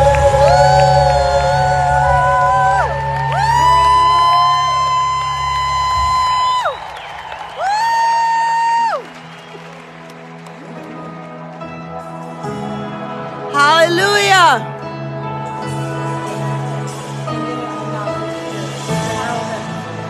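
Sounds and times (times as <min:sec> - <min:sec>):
bass and drums: 0:00.0 - 0:07.8
crowd cheering: 0:00.0 - 0:12.8
worship music melody: 0:00.0 - 0:20.0.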